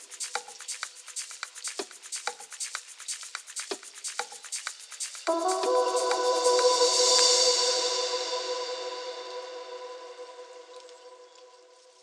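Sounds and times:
clicky percussion ticks: 0:00.0 - 0:07.4.

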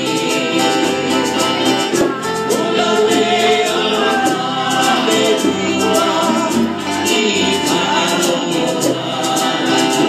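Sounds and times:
group of voices singing: 0:00.0 - 0:10.0
strummed strings: 0:00.0 - 0:10.0.

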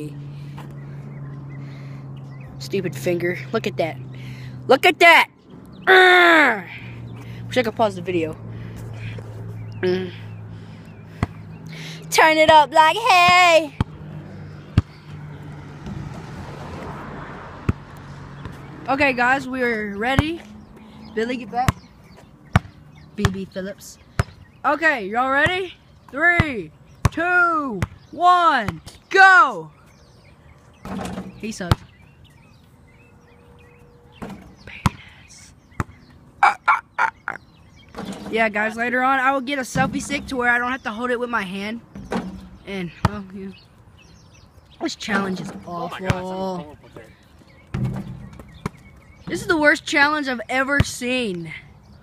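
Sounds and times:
basketball bouncing on pavement: 0:11.0 - 0:11.6, 0:12.2 - 0:24.5, 0:25.2 - 0:29.0, 0:30.8 - 0:32.1, 0:34.1 - 0:36.1, 0:39.6 - 0:41.1, 0:41.8 - 0:44.4, 0:45.1 - 0:46.5, 0:47.4 - 0:49.9, 0:50.6 - 0:51.2.

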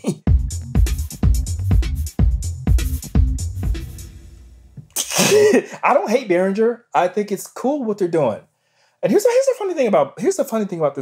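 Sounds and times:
man laughing: 0:00.0 - 0:00.3, 0:04.9 - 0:06.0.

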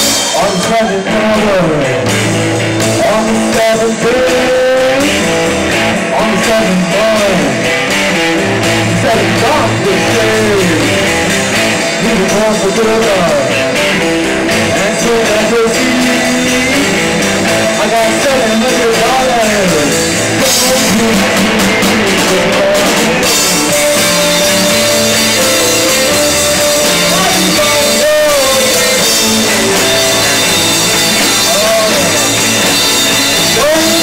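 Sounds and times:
rock band playing live: 0:00.0 - 0:34.0.

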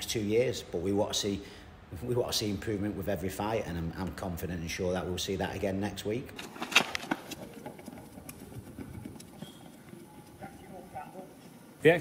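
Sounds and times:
running footsteps on tarmac: 0:06.4 - 0:11.7
faint voices: 0:09.6 - 0:11.8.

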